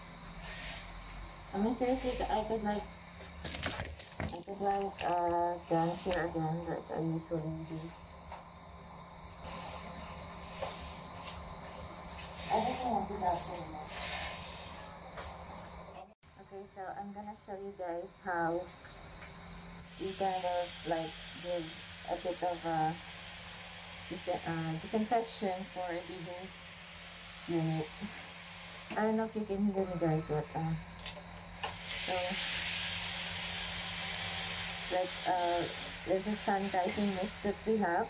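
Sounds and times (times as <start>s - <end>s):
low steady hum: 0.0s - 38.0s
breath hissing through respirator: 0.3s - 2.4s, 9.4s - 15.0s, 19.8s - 25.1s, 31.6s - 37.5s
faint high whine: 4.4s - 30.9s.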